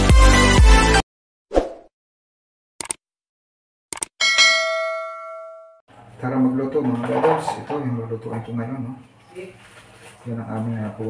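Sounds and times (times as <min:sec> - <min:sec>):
bright bell ding: 0:04.2 - 0:05.8.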